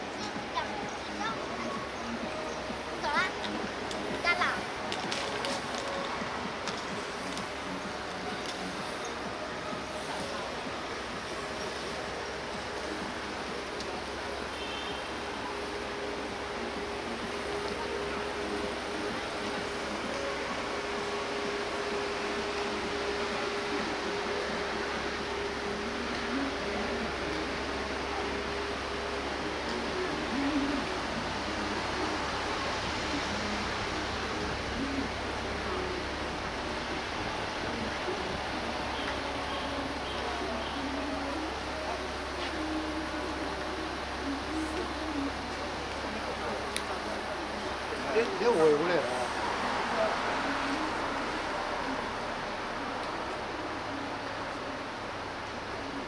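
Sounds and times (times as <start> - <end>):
road traffic noise: 0.0 - 56.0.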